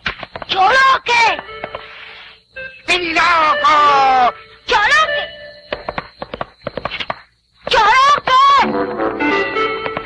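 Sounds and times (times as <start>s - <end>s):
cartoon horse hooves clip-clopping: 5.7s - 7.9s, 9.7s - 10.0s.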